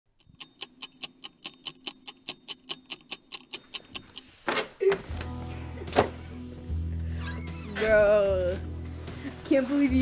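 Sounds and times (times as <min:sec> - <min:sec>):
rapid high clock-like ticking: 0:00.1 - 0:04.3.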